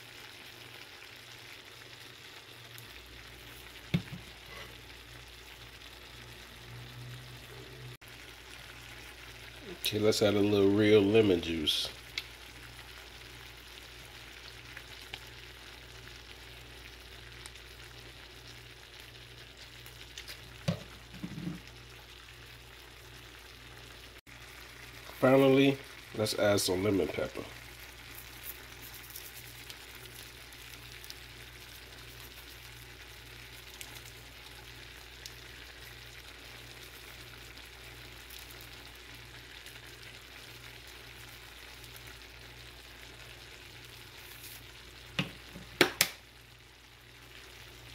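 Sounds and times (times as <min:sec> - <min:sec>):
shrimp sizzling in a skillet: 0:00.0 - 0:47.9.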